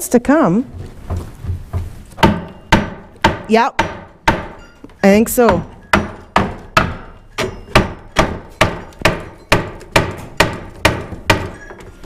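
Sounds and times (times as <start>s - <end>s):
rubber mallet knocking on wood: 1.1s - 4.6s, 5.4s - 11.6s.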